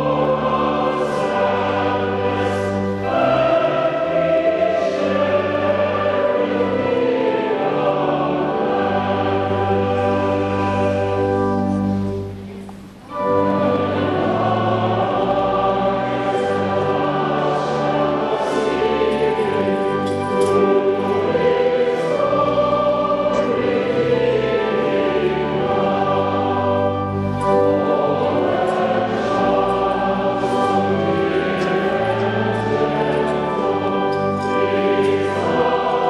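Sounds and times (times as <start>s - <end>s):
choir singing in harmony: 0.0s - 36.0s.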